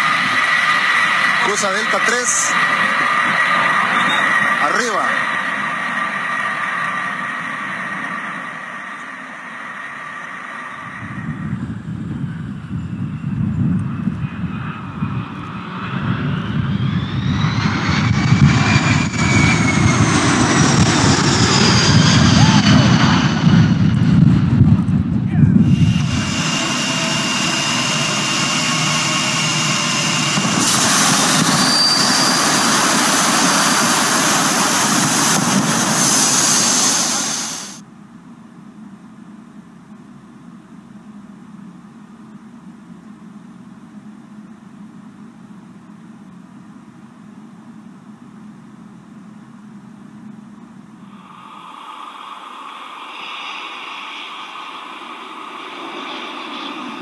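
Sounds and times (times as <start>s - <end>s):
low jet passing rumble: 0.0s - 37.8s, 51.0s - 57.0s
jet engines high whine: 0.0s - 57.0s
emergency slide inflating rush: 25.6s - 37.8s, 51.0s - 57.0s.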